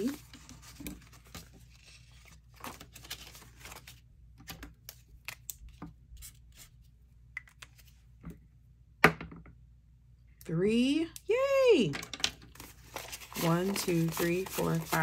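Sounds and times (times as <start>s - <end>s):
paper bills rustling: 0.0s - 4.0s, 12.6s - 15.0s.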